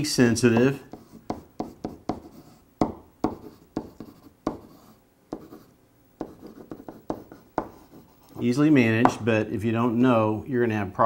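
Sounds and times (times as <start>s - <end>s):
marker writing on whiteboard: 0.3s - 9.3s.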